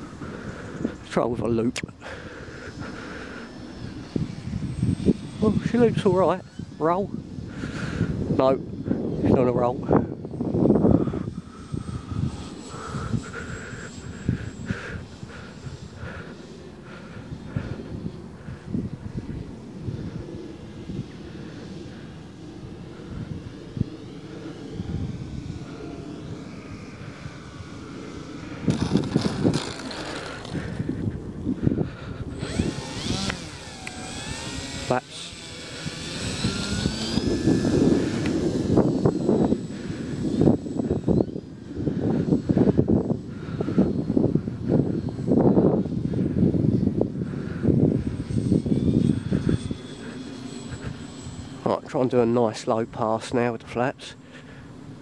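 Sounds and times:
loud uneven low noise: 0.0 - 55.0
model plane motor whining: 0.0 - 55.0.

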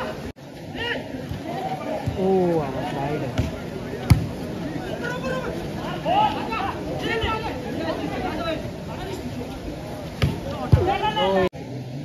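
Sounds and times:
volleyball thumps: 3.3 - 4.4.

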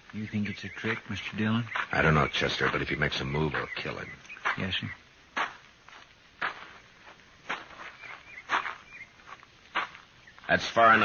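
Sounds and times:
man's footsteps approaching: 0.0 - 11.0.

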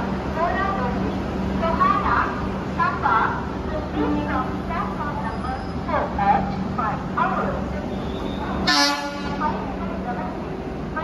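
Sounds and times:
rumble of moving train: 0.0 - 11.0
train horn blast: 8.6 - 9.4.

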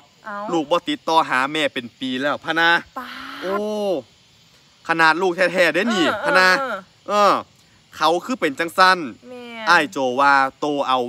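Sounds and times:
person exclaiming oh: 3.0 - 3.7, 5.8 - 6.8.

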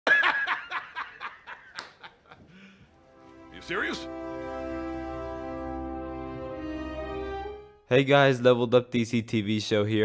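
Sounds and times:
man laughing out loud: 0.1 - 2.8.

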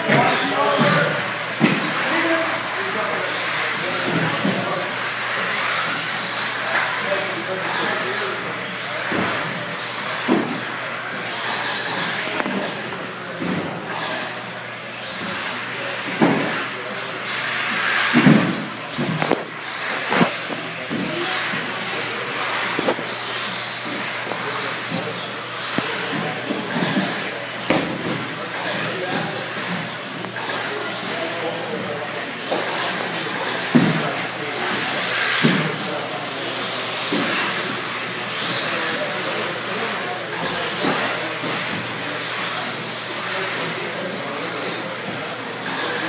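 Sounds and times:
rc car motor whine: 0.0 - 46.0.

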